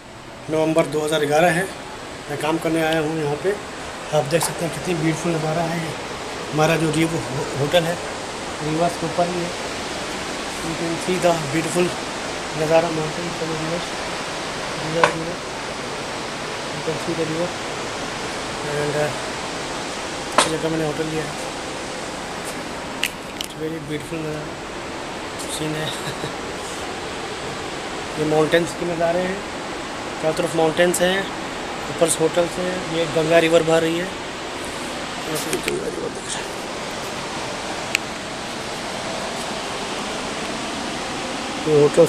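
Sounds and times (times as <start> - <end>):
river rushing over rapids: 0.0 - 42.0.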